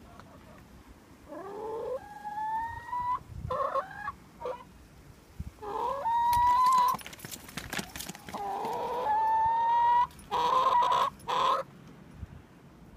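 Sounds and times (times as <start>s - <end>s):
hens clucking: 0.0s - 0.7s, 1.3s - 4.7s, 5.6s - 6.9s, 8.1s - 11.7s
hens calling: 1.3s - 4.7s, 5.6s - 7.0s, 8.1s - 11.7s.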